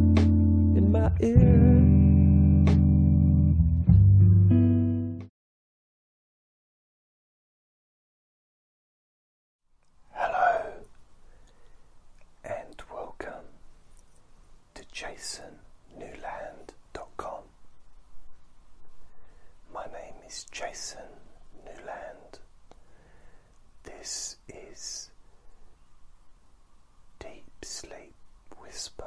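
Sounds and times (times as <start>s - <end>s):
person whispering: 10.1s - 11.0s, 12.4s - 13.6s, 14.7s - 17.6s, 19.6s - 22.5s, 23.8s - 25.2s, 27.2s - 29.0s.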